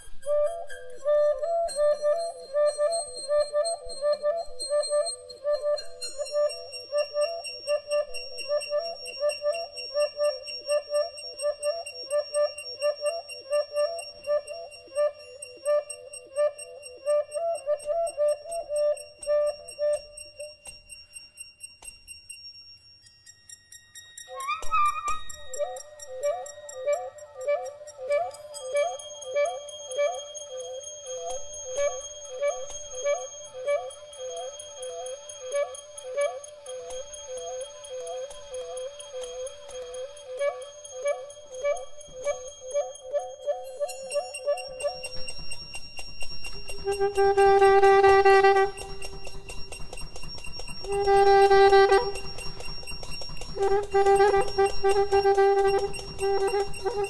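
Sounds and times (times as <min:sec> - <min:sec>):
thin high whistling tones: 0:00.0 - 0:57.0
light percussion ticks: 0:19.2 - 0:57.0
soprano saxophone: 0:46.7 - 0:49.8, 0:50.8 - 0:52.8, 0:53.5 - 0:57.0.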